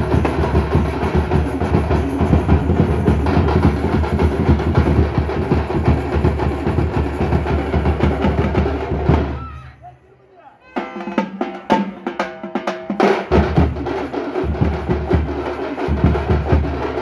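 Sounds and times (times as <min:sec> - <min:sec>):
frame drums beaten fast: 0:00.0 - 0:09.6, 0:10.7 - 0:17.0.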